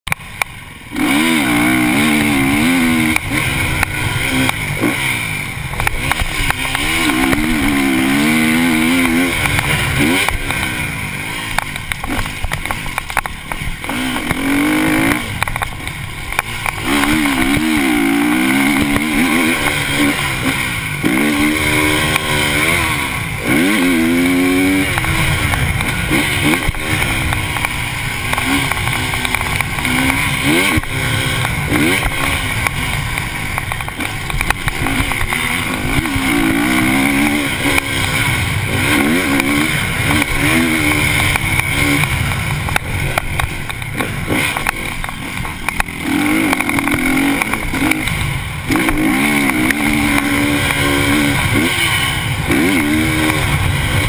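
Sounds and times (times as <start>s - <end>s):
motocross bike engine revving: 0.1s - 54.0s.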